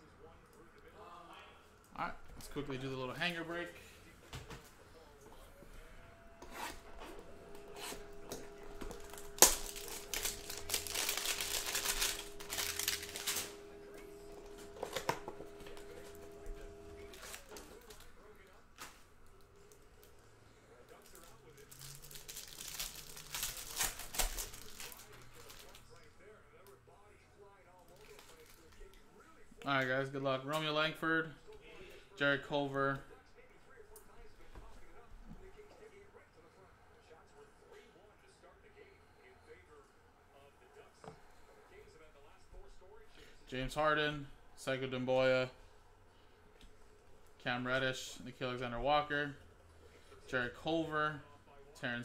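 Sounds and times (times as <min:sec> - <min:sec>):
plastic wrapping crinkling: 0:07.0 - 0:20.1, 0:20.9 - 0:26.1, 0:27.8 - 0:29.0.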